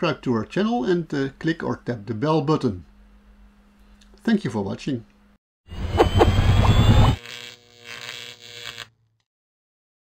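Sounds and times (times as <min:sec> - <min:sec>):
faint steady hum: 0:00.0 - 0:09.0
electronic whoosh with rising whistle: 0:05.7 - 0:07.2.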